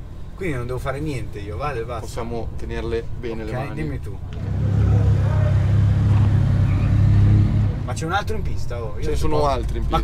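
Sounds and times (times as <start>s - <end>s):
car engine running at low revs: 4.2s - 8.1s.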